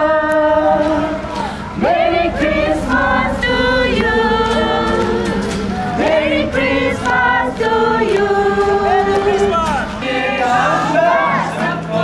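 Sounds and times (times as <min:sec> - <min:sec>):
crowd singing carols: 0:00.0 - 0:12.0.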